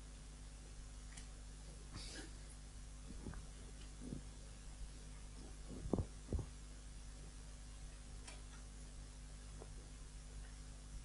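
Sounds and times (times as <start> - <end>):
low hum: 0.0 - 11.0
headset microphone handling thumps: 5.6 - 6.5.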